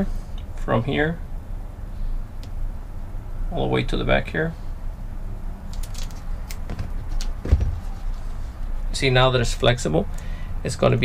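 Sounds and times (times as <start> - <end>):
scissors snipping foam tape: 5.7 - 7.4
tape roll thumping on seat: 6.6 - 8.1.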